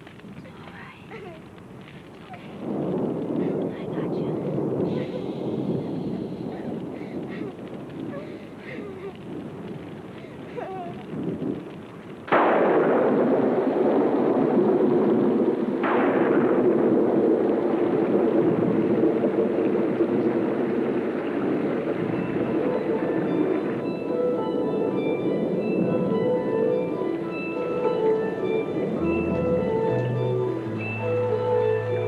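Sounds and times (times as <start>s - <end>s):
sustained rumble: 0.0s - 32.0s
loud blasts: 11.1s - 32.0s
dramatic music: 22.2s - 32.0s.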